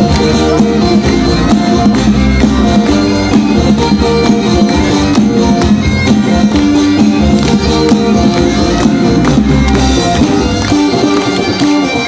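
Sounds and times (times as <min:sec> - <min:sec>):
bagpipes with drone: 0:00.0 - 0:12.0
plucked string instrument: 0:00.0 - 0:12.0
steady drum beat: 0:00.0 - 0:12.0.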